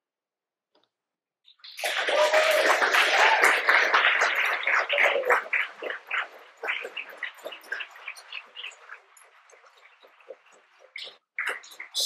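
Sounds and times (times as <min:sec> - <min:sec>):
audience applause: 0:01.8 - 0:10.8.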